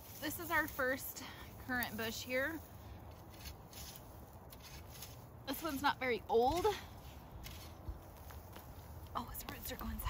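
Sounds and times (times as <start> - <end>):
soft rustles or taps: 7.4 - 10.0.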